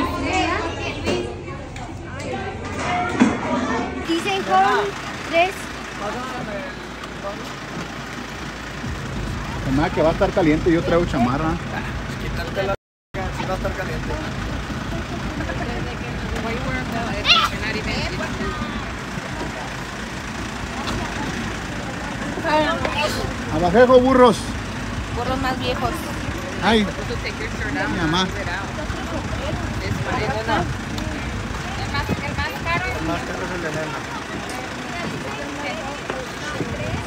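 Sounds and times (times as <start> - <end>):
van engine idling: 4.0 - 37.0
people talking: 9.4 - 19.9, 25.2 - 37.0.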